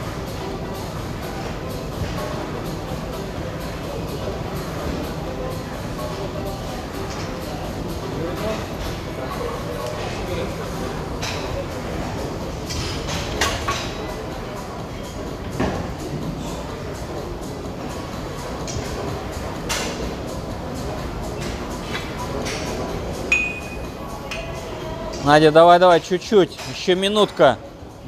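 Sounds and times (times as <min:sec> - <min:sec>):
gym background noise: 0:00.0 - 0:28.0
ringing metallic clink: 0:23.3 - 0:23.9.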